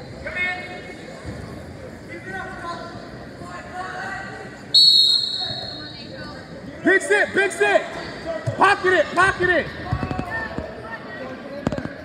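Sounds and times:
sharp whistle blast: 4.8s - 5.9s.

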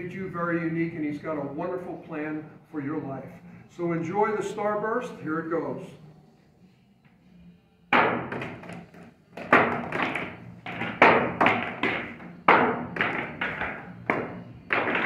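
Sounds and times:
billiard balls clacking and knocking: 8.0s - 15.0s
pool cue striking billiard balls: 8.0s - 15.0s.

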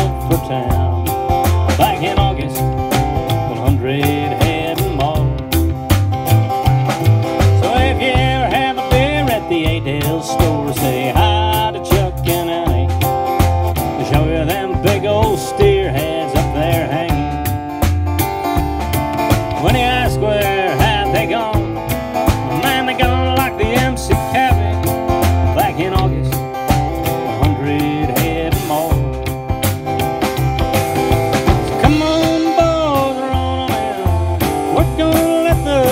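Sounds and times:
country band playing: 0.0s - 35.9s.

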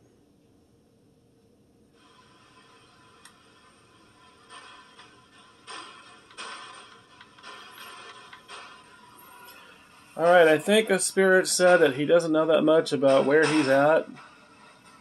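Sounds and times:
faint radio hiss: 0.0s - 15.0s
radio static bursts: 2.0s - 15.0s.

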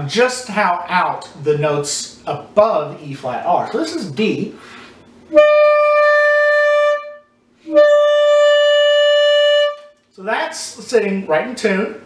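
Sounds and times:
saxophone long held notes: 5.3s - 10.0s.

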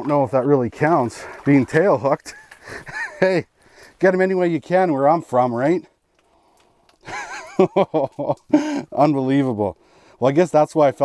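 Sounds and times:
man laughing: 2.2s - 3.4s, 7.0s - 9.1s.

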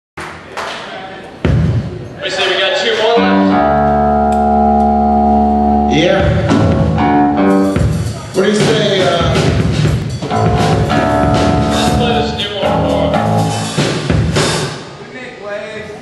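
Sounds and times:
drums: 1.3s - 2.2s, 3.2s - 15.2s
guitar chord ringing: 3.2s - 7.8s, 10.3s - 13.8s
electric guitar: 3.2s - 7.9s, 10.2s - 13.8s
punk rock band playing live: 3.2s - 14.6s.

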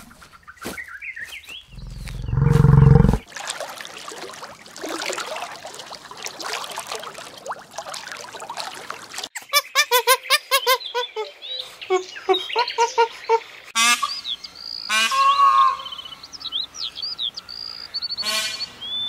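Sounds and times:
buffalo bellowing: 1.7s - 3.2s
water trickling and bubbling: 1.7s - 9.4s.

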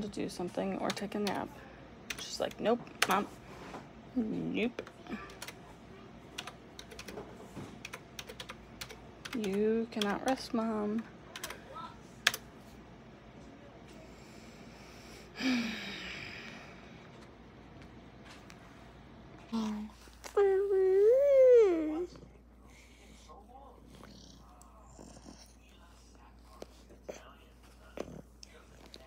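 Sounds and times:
low room hum: 0.0s - 29.0s
laptop keyboard clicks: 6.4s - 7.2s.

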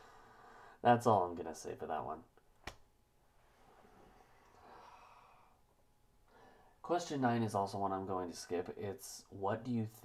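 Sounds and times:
man breathing in: 0.0s - 0.8s, 3.8s - 5.6s, 6.3s - 6.8s
man speaking: 0.8s - 2.3s, 6.8s - 10.0s.

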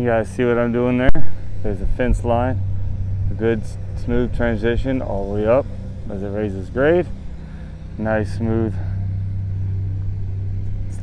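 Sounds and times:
excavator diesel engine running: 0.0s - 11.0s.

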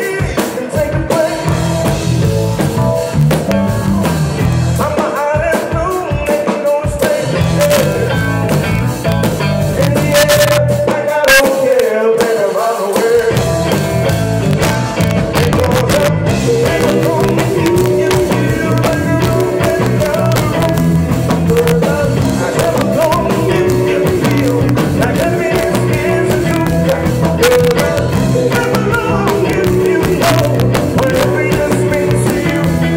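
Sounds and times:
drums and congas: 0.0s - 32.9s
electric guitar: 0.0s - 32.9s.

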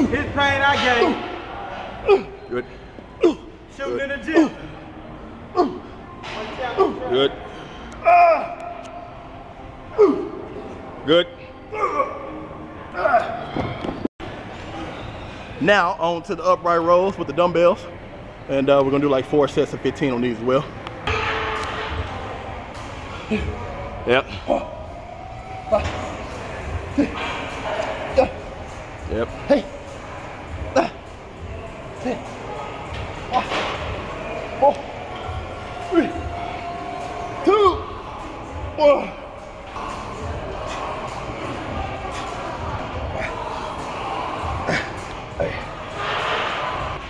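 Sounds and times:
busy gym ambience: 0.0s - 47.0s
reverberant room noise: 0.0s - 47.0s
indistinct voices: 19.8s - 47.0s.

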